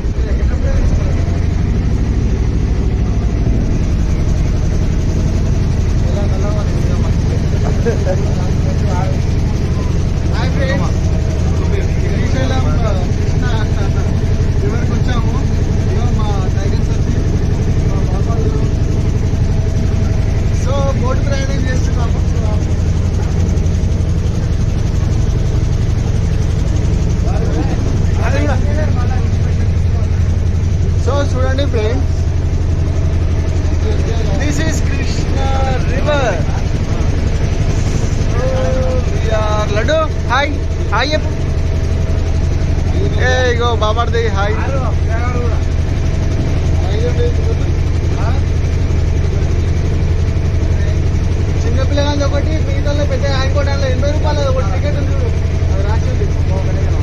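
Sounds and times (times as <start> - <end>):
people talking: 0.0 - 32.4, 33.4 - 41.5, 42.8 - 57.0
boat engine droning: 0.0 - 57.0.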